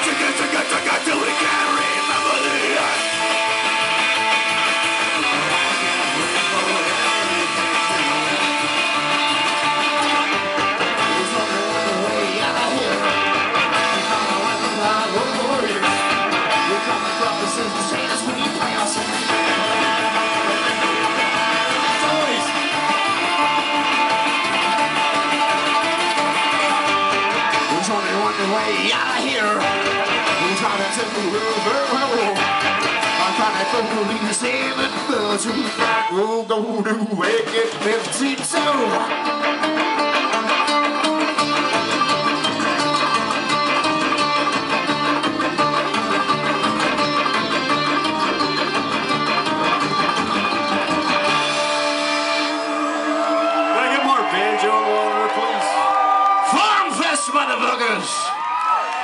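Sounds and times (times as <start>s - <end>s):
mandolin: 0.0s - 36.2s, 37.2s - 53.2s
banjo: 0.0s - 53.3s
upright bass: 0.0s - 57.9s
drums: 0.0s - 59.0s
electric guitar: 0.0s - 59.0s
accordion: 37.3s - 53.5s.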